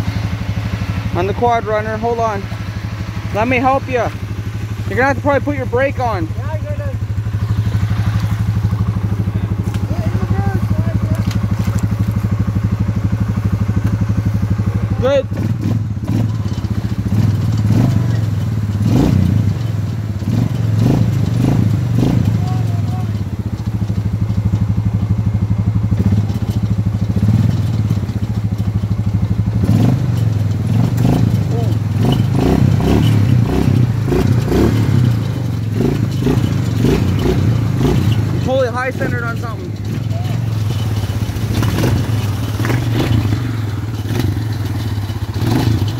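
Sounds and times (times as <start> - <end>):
atv engine droning: 0.0 - 45.9
clunks: 30.1 - 45.9.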